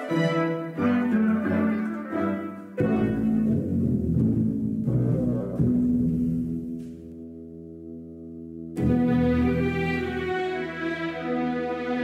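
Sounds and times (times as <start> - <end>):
heavy low orchestral notes: 0.0 - 7.3, 8.8 - 12.0
sustained string chords: 0.0 - 12.0.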